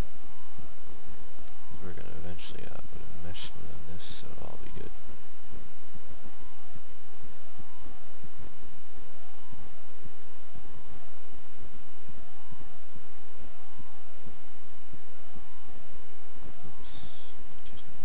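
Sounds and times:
steady background noise: 0:00.0 - 0:18.0.

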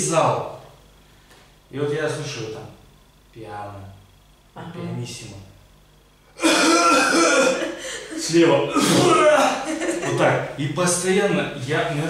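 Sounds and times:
man mock coughing: 0:06.4 - 0:09.7.

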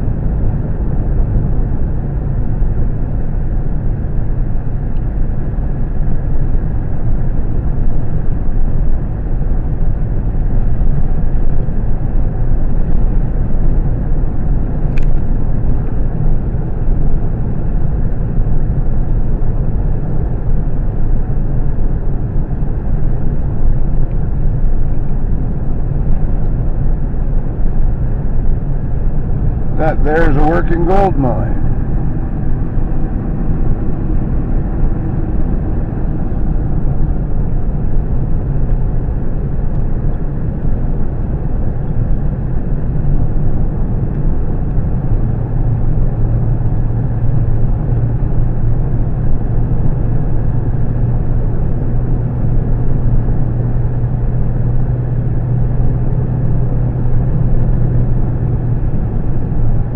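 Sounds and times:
car road noise inside cabin: 0:00.0 - 0:59.9.

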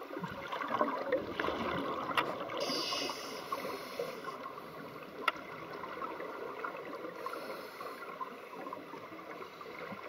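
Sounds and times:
underwater air bubbles: 0:00.0 - 0:10.0
steady hiss: 0:02.6 - 0:05.2, 0:07.1 - 0:08.7.

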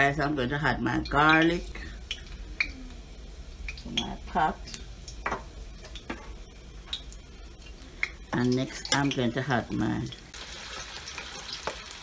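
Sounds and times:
stove igniter ticks: 0:01.0 - 0:02.7, 0:03.6 - 0:06.1.

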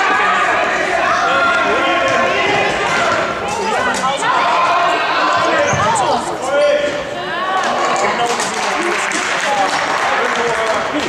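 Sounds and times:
people shouting in a hall: 0:00.0 - 0:08.2.

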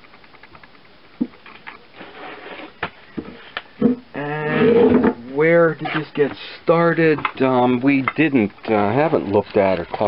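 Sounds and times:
faint rapid ticking: 0:00.0 - 0:01.9, 0:06.1 - 0:10.0.

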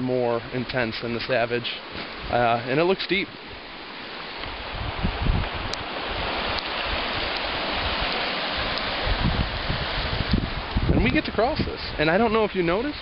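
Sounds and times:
river rushing past stony bank: 0:00.0 - 0:13.0
wind buffeting microphone: 0:04.4 - 0:13.0.

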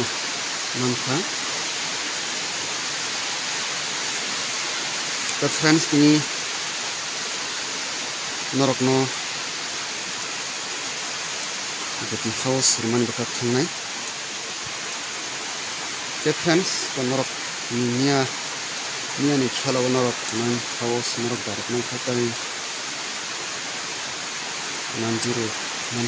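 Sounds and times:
steady hiss: 0:00.0 - 0:26.0.

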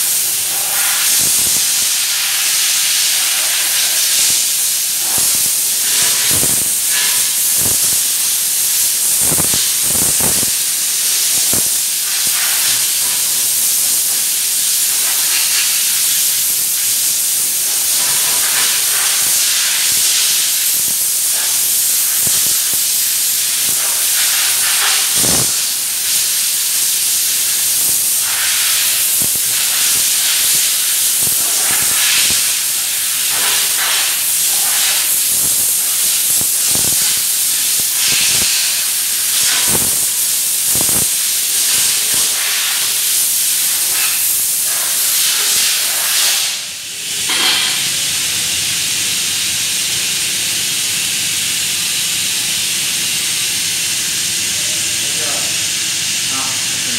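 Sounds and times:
spray gun hissing: 0:00.0 - 0:56.9.

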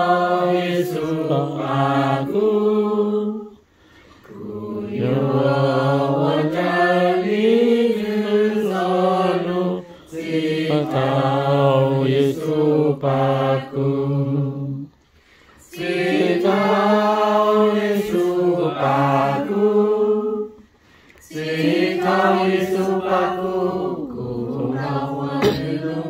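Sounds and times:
group singing a hymn unaccompanied: 0:00.0 - 0:26.0.

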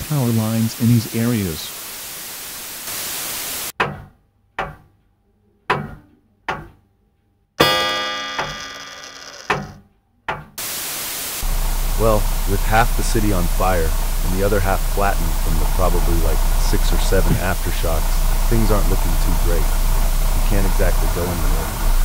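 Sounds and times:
static hiss: 0:00.0 - 0:03.7, 0:10.6 - 0:22.0
bright ringing chord: 0:07.6 - 0:09.4
low thuds: 0:11.4 - 0:22.0.

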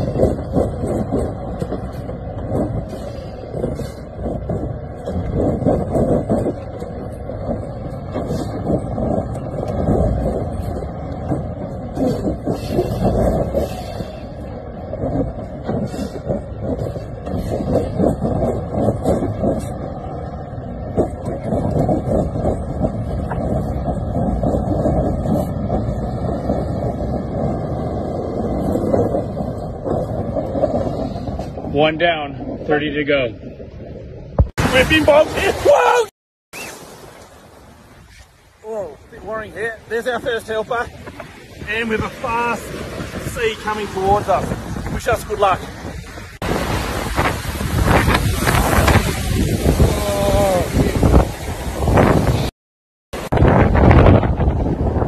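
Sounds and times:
diesel truck engines rumbling: 0:00.0 - 0:35.9.

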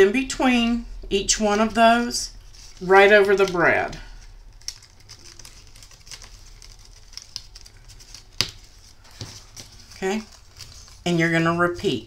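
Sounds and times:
cardstock rustling: 0:01.4 - 0:12.0.

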